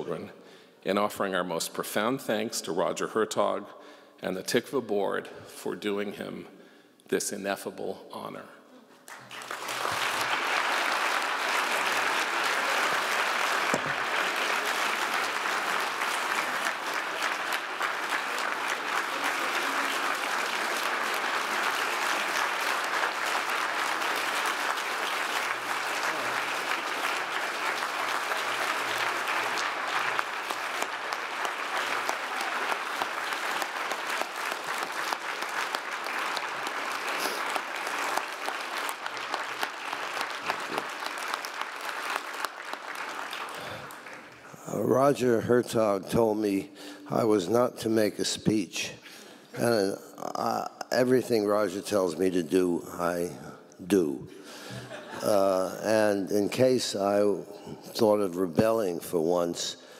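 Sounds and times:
audience applauding: 9.0 - 45.0.

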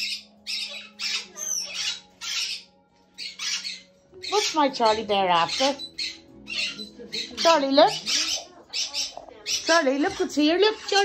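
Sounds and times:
cockatoo squawking: 0.0 - 11.0.

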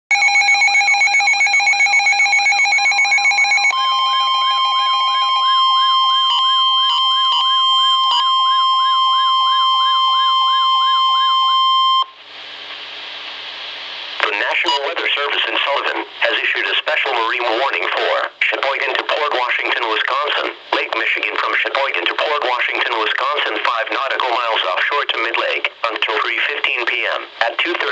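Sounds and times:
short beeps: 0.1 - 12.1
weather radio warbling siren alert: 0.1 - 12.1
steady warning alarm tone: 0.1 - 12.2
radio hiss: 12.6 - 27.9.

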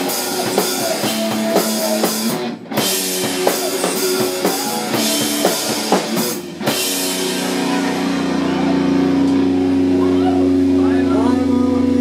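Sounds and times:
overdriven electric guitar drone: 0.0 - 12.0.

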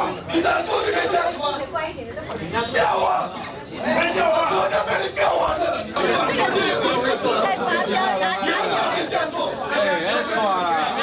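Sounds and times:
men arguing: 0.0 - 1.7, 2.4 - 11.0.

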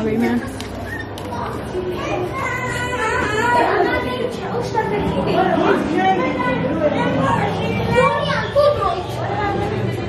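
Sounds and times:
people and children talking: 0.0 - 10.0
child's voice: 0.9 - 10.0.

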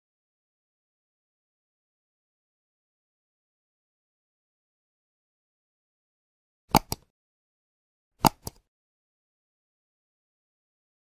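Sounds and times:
mouse click sound effect: 6.7 - 7.1, 8.2 - 8.6.

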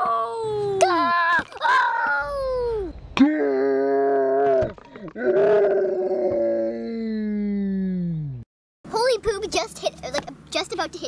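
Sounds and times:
person screaming: 0.0 - 8.2.

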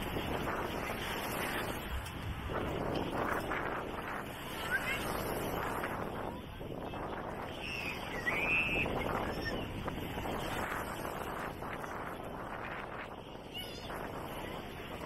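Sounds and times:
crowd voices talking and calling: 0.0 - 15.0.

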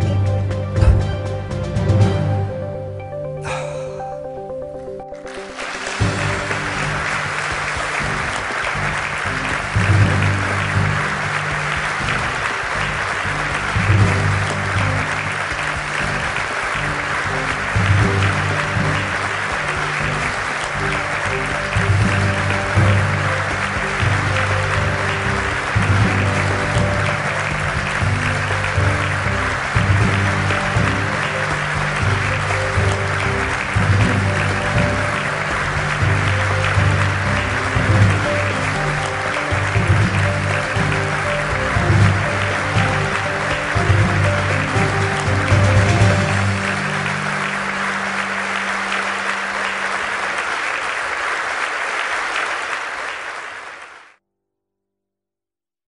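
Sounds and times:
background music with bass line: 0.0 - 47.7
audience applauding: 5.1 - 54.2.

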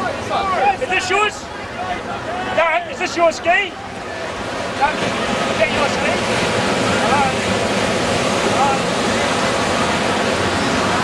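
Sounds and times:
surf breaking: 0.0 - 11.0.

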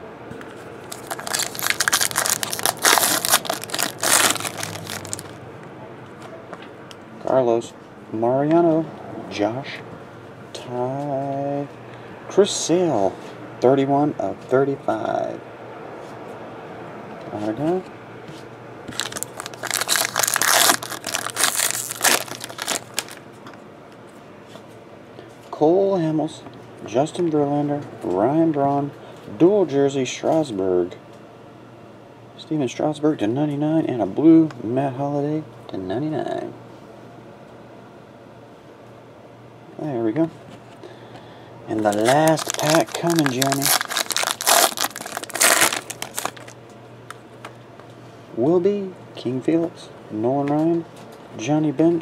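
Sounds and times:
foil wrapper crinkling and tearing: 0.8 - 5.4, 18.9 - 23.2, 41.8 - 46.6.

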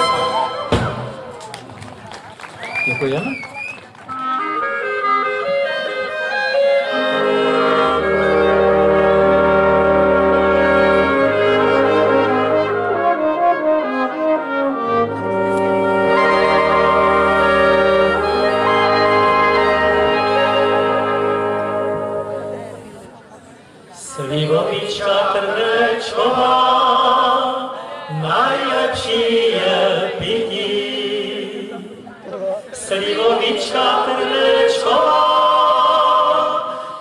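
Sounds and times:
folk brass band playing: 0.0 - 1.2, 4.0 - 23.4
tuba bass line: 4.3 - 23.1.

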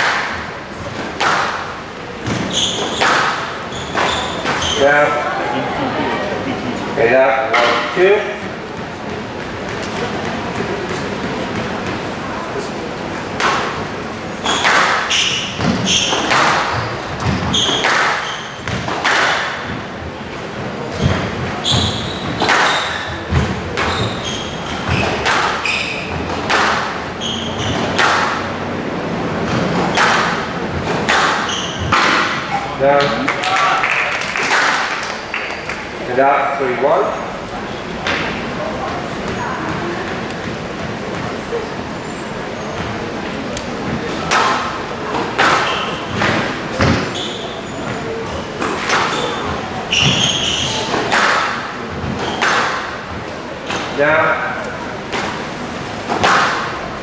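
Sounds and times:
rackets hitting squash ball: 0.0 - 5.3, 7.0 - 12.4, 13.1 - 41.6, 42.6 - 57.0
voices: 0.0 - 18.1
shoe squeaks: 2.2 - 5.3, 14.3 - 18.8, 20.9 - 26.4, 27.1 - 28.0, 30.9 - 33.0, 36.9 - 37.8, 41.5 - 43.1, 45.4 - 51.1.

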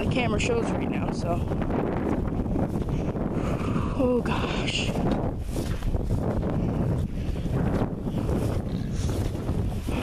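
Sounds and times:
wind buffeting microphone: 0.0 - 10.0
footsteps through wet grass: 5.0 - 6.5.

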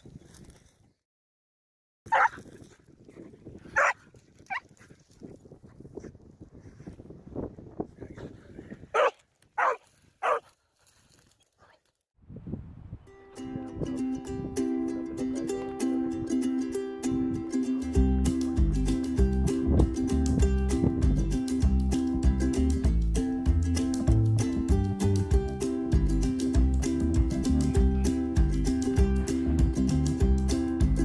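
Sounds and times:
puppy barking: 2.1 - 2.4, 3.8 - 4.6, 9.0 - 10.5
acoustic guitar music: 13.1 - 31.0.

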